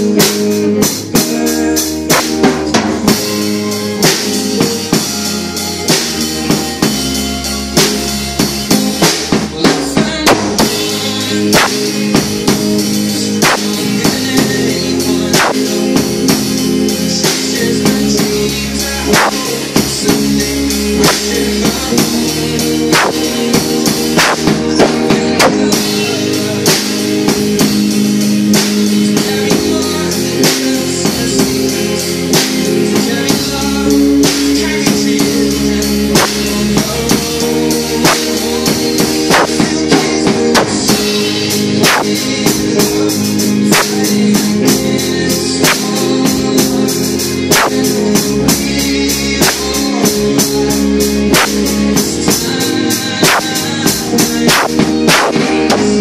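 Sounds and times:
drum kit beat: 0:00.0 - 0:56.0
electric guitar chords: 0:00.0 - 0:56.0
cymbal and snare hits: 0:11.6 - 0:12.0, 0:13.4 - 0:13.8, 0:15.4 - 0:15.7, 0:19.2 - 0:19.5, 0:22.9 - 0:23.4, 0:24.2 - 0:25.6, 0:39.3 - 0:39.7, 0:41.8 - 0:42.2, 0:47.5 - 0:47.9, 0:51.4 - 0:51.6, 0:54.5 - 0:56.0.

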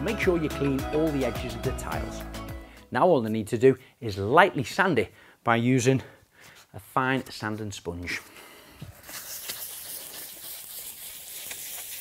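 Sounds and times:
sanding sponge rubbing on tile: 0:09.1 - 0:12.0.

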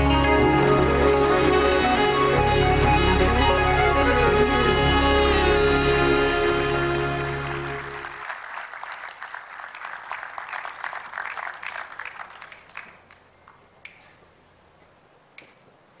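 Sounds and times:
audience applauding: 0:00.0 - 0:13.6.

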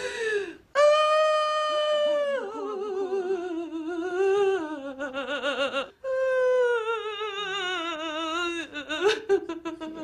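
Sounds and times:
woman wailing and sobbing: 0:00.0 - 0:10.0.

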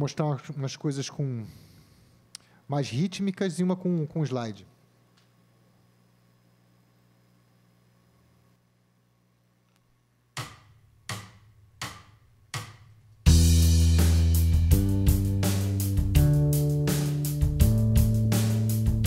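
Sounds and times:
faint low hum: 0:00.0 - 0:13.3
drum kit: 0:10.4 - 0:19.0
bass guitar: 0:13.2 - 0:19.0
electric guitar playing rhythm: 0:13.3 - 0:19.0.

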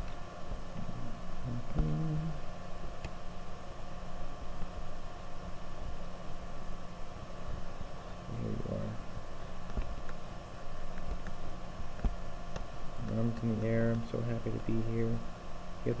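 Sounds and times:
electrical hum and low rumble: 0:00.0 - 0:16.0.

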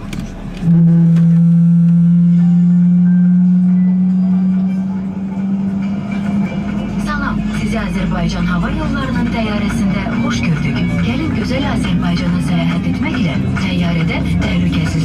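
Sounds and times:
loud low drone over speakers: 0:00.0 - 0:15.0.

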